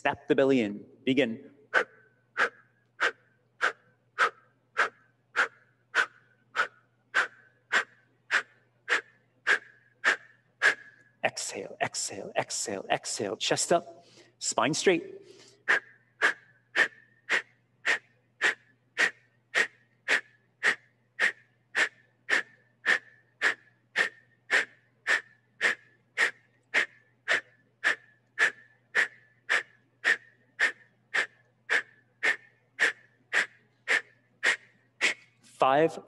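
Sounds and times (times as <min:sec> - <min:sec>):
sharp forced exhales: 0:01.7 - 0:11.1.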